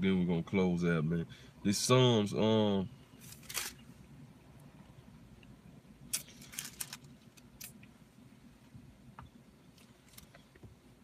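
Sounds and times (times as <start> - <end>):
low steady hum: 0.0 - 11.0
handling clicks and rustles: 6.1 - 8.0, 9.1 - 10.8.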